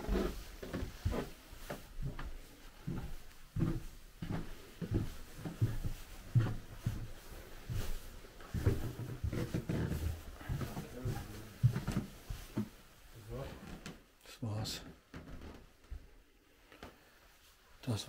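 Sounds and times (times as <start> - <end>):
footsteps: 0.0 - 14.0, 14.6 - 17.5.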